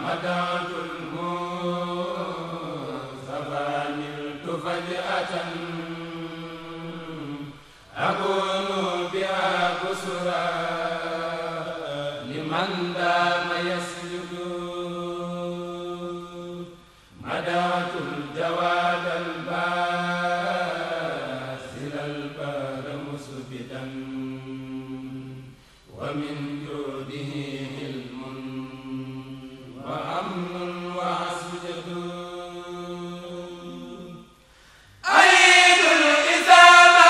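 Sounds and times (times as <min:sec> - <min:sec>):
group chanting held notes: 0:00.0 - 0:34.3, 0:35.0 - 0:37.0.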